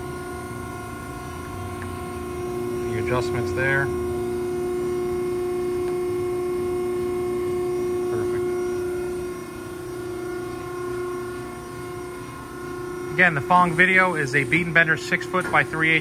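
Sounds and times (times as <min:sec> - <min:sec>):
hydraulic shear humming: 0:00.0 - 0:16.0.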